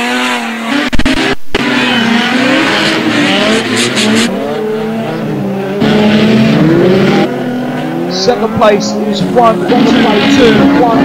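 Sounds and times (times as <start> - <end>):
race car engines revving: 0.0 - 11.0.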